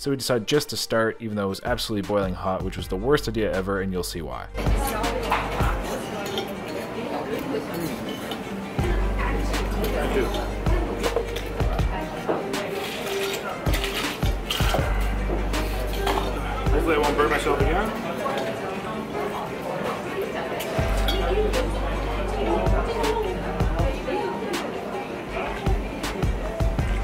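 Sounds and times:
clinking cutlery bowls and ice: 4.8 - 8.8, 9.7 - 16.5, 20.6 - 21.3
music with heavy bass beat: 26.3 - 27.0.

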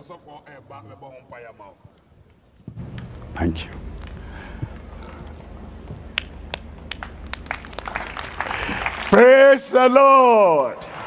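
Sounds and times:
steady low hum: 0.0 - 9.8
hand claps: 6.1 - 9.2.

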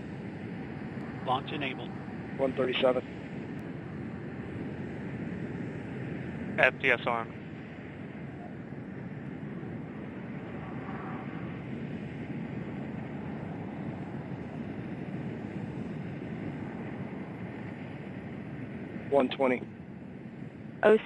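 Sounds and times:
wind-like rushing noise: 0.0 - 21.0.

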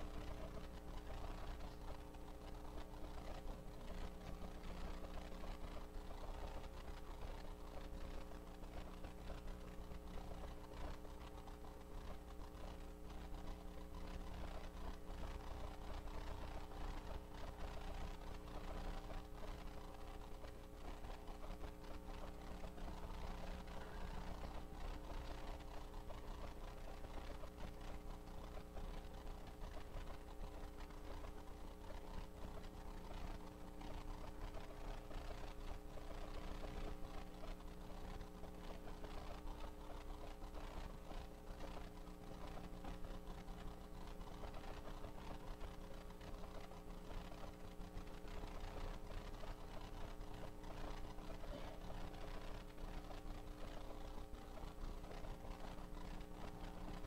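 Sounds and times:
small clicks: 0.0 - 57.0
steady hum of held tones: 0.0 - 57.0.

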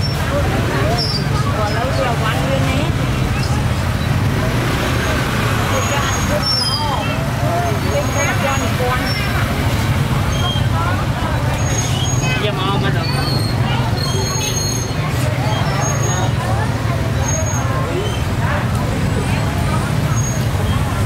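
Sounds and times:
low rumble of traffic: 0.0 - 21.0
people talking: 0.0 - 21.0.

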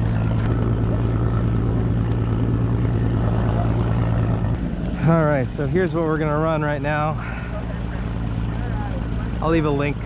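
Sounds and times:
outboard motor running: 0.0 - 10.0
wind: 0.0 - 10.0.

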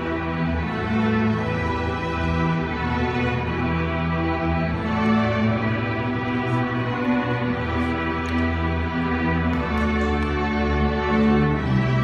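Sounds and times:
string orchestra playing: 0.0 - 12.0.

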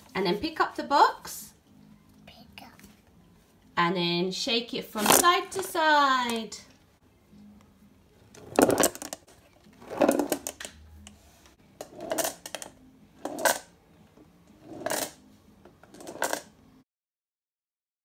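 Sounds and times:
marbles rattling in a cardboard box: 8.4 - 9.2, 9.8 - 10.6, 14.7 - 15.2, 16.0 - 16.5.

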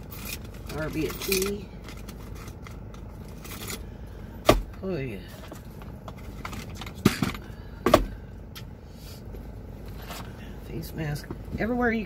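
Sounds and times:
steady low rumble: 0.0 - 12.0.

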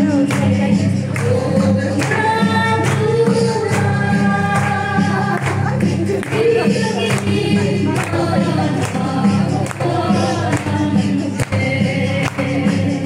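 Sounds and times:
crowd singing together: 0.0 - 13.0.

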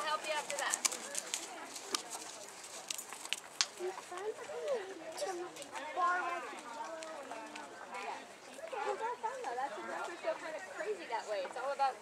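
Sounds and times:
horse hooves on sand: 0.0 - 4.8.

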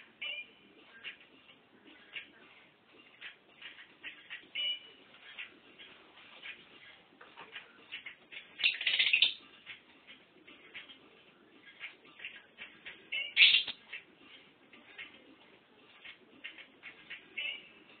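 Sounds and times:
lovebird chattering: 8.6 - 9.4, 13.2 - 13.8.

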